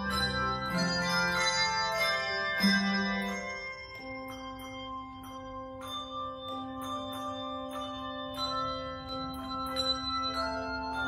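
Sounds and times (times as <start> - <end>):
handbell chords: 0.0 - 11.0.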